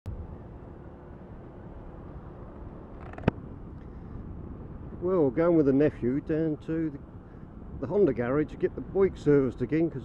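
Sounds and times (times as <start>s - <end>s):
road and wind rumble: 0.0s - 10.0s.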